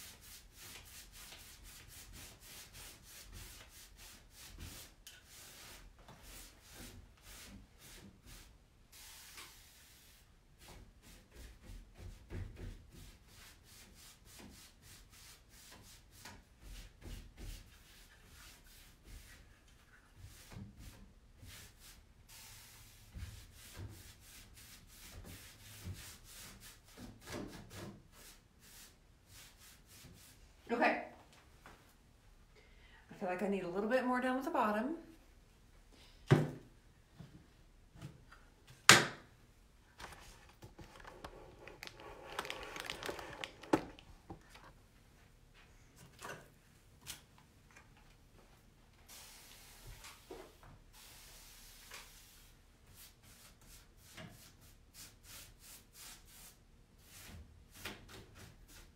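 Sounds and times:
paintbrush strokes: 0.0s - 12.1s, 12.9s - 30.4s.

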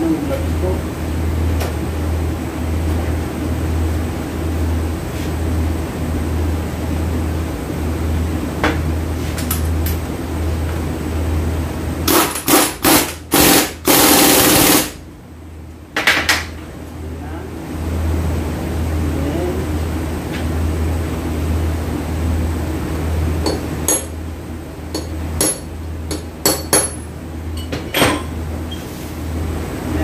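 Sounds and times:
impact wrench hammering: 23.4s - 24.2s, 24.9s - 28.3s.

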